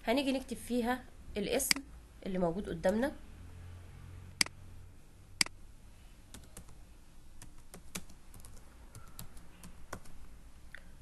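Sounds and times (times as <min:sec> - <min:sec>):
typing on computer keyboard: 0:06.3 - 0:06.8, 0:07.4 - 0:10.2.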